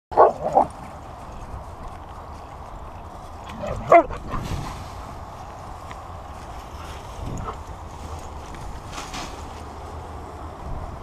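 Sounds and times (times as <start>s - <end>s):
husky barking: 0.1s - 0.8s, 3.4s - 4.4s.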